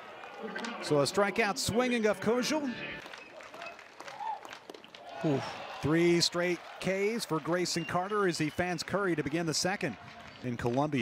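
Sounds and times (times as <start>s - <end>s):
scattered clapping: 0.0s - 1.5s, 3.0s - 11.0s
murmur of crowd voices: 0.0s - 3.8s.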